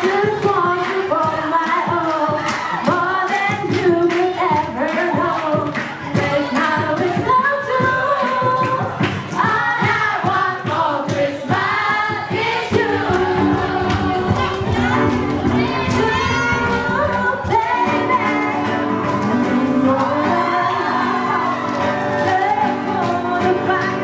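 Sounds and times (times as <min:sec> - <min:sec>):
young voices singing together: 0:00.0 - 0:24.0.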